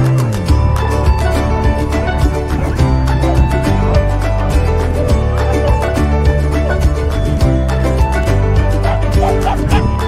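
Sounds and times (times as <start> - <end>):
upbeat background music: 0.0 - 10.0
dog barking in high yaps: 8.8 - 9.9.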